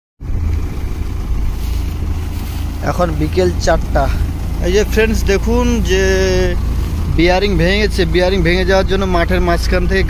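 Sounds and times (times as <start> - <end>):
combine harvester engine rumbling: 0.2 - 10.0.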